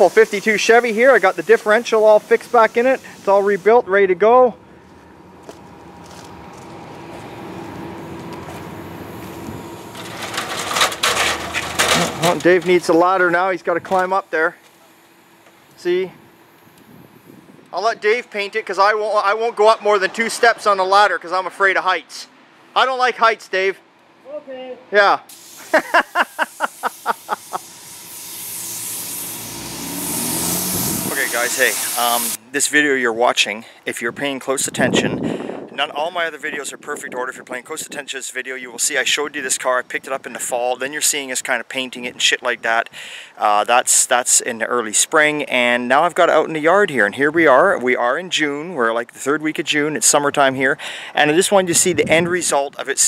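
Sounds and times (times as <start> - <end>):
paint spray gun hissing: 0.0 - 3.8, 25.3 - 32.4
steady low hum: 3.1 - 17.7
man laughing: 25.6 - 27.8.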